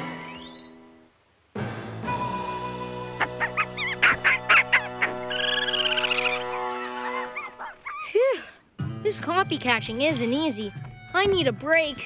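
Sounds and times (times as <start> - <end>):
background music: 1.6 - 12.0
cartoon dinosaur squawking chirps: 3.2 - 8.1.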